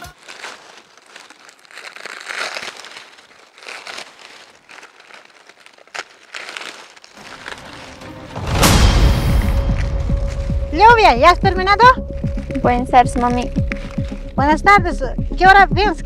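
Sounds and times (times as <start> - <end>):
husk snapping: 0.0 - 10.7, 11.8 - 14.4
corn husks rustling and crackling: 0.0 - 16.0.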